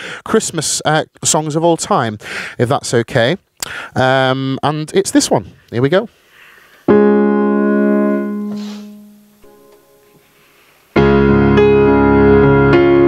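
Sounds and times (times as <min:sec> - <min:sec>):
piano chords on keyboard: 0:06.9 - 0:10.2, 0:11.0 - 0:13.0.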